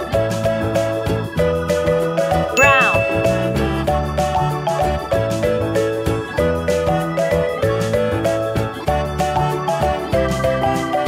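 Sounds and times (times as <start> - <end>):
upbeat children's music: 2.6 - 3.7
bright ding chime effect: 2.6 - 3.8.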